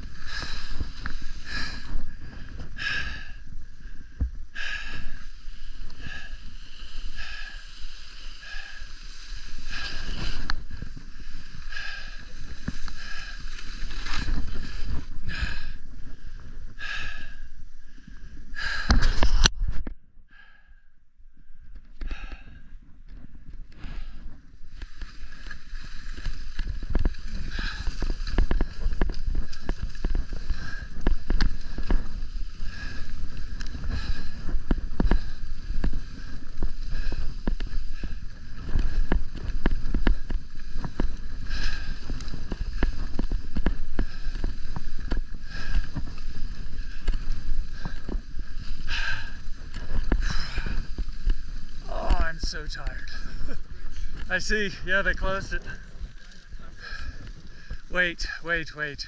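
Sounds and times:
skis scraping over packed snow: 0.0s - 17.1s, 23.2s - 59.0s
wind rumble on microphone: 0.0s - 20.6s, 21.3s - 59.0s.

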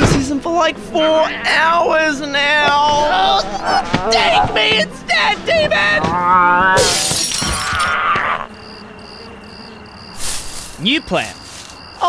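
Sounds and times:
wavering vocal cry: 0.9s - 9.4s
glass shattering: 6.8s - 8.0s.

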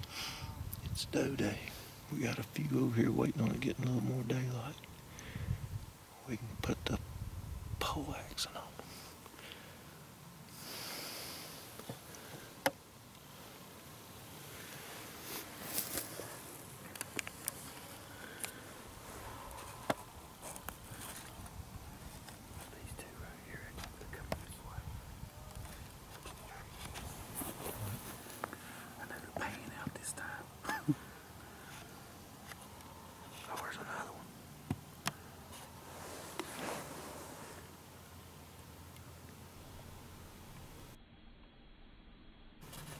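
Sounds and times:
person whispering: 7.8s - 9.0s, 22.6s - 28.0s, 28.9s - 30.6s, 33.3s - 34.3s
clothing rustling: 35.6s - 37.7s.

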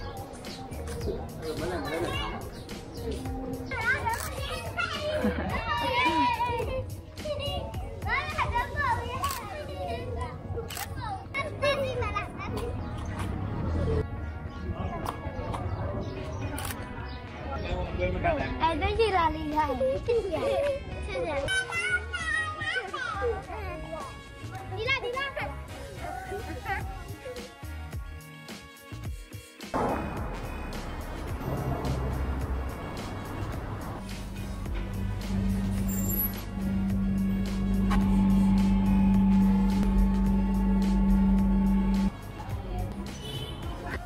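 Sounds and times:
young children talking: 0.0s - 17.6s, 18.2s - 27.5s, 38.5s - 44.0s
music with bass beat: 30.2s - 44.0s.

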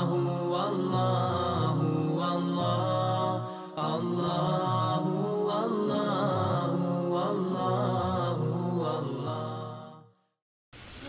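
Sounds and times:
chanted vocal harmony: 0.0s - 10.2s.

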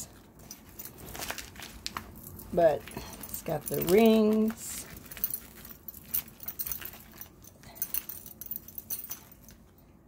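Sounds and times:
metal handle rings clinking: 0.0s - 10.0s
woven strips rustling: 0.0s - 10.0s.

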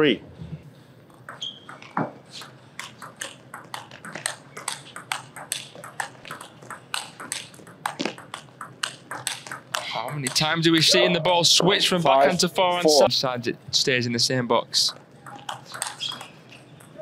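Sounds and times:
table tennis ball clicking: 1.2s - 10.5s, 15.1s - 17.0s.

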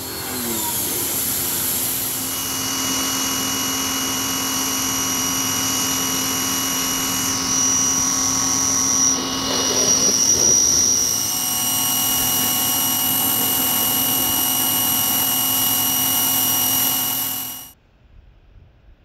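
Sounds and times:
water spray hissing on siding: 0.0s - 3.9s
pressure washer whining: 0.0s - 17.8s.

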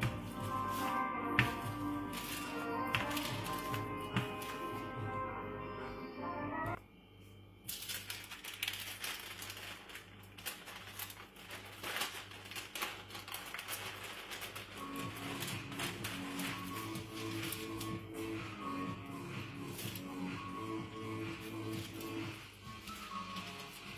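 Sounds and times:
baking paper crinkling: 0.0s - 5.0s, 7.7s - 18.4s, 21.0s - 23.9s
background music with steady beat: 0.0s - 6.8s, 14.6s - 23.9s.

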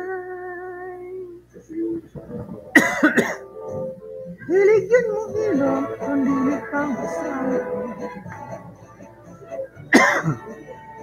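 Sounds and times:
person coughing loudly: 2.7s - 3.5s, 9.9s - 10.5s.

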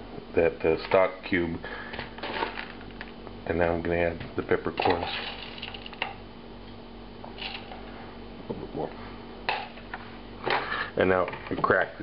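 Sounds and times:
peppercorns rattling: 4.8s - 6.1s, 7.4s - 7.7s.

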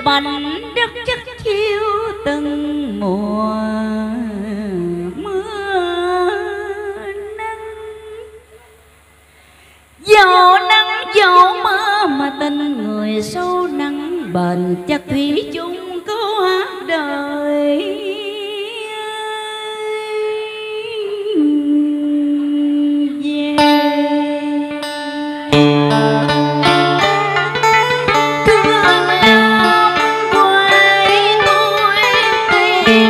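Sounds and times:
woman singing long held note: 0.0s - 8.8s, 10.0s - 33.0s.

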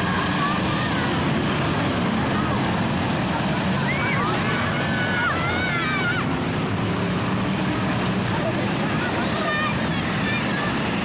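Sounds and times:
crowd voices shouting: 0.0s - 11.0s
racing car engines droning: 0.0s - 11.0s.

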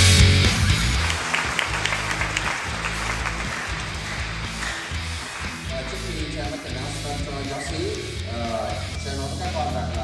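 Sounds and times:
crowd applauding: 0.0s - 8.3s
background rock music: 0.0s - 10.0s.

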